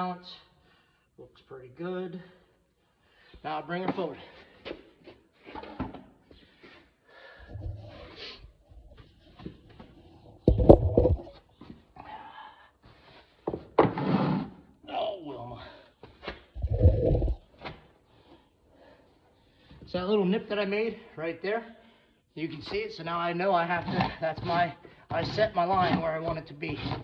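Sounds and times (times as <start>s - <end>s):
handling noise: 10.3s - 11.4s
loud thumps: 10.4s - 11.4s, 16.6s - 17.4s.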